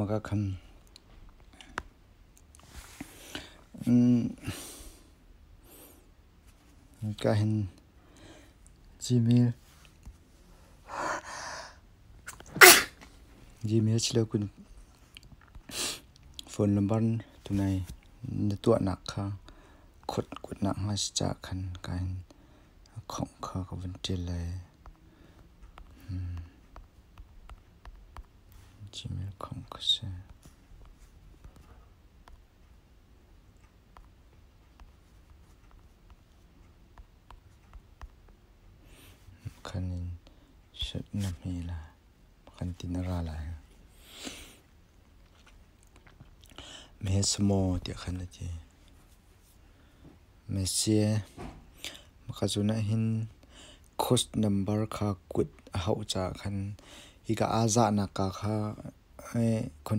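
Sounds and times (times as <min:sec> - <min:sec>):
person sneezing: 0:12.5 - 0:13.0
fingertip tapping touchscreen: 0:25.7 - 0:28.4
noisy intake of breath: 0:43.9 - 0:44.6.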